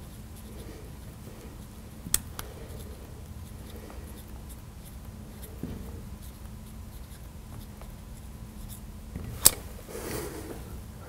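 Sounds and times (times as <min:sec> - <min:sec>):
marker pen writing on glass: 0:02.5 - 0:08.9.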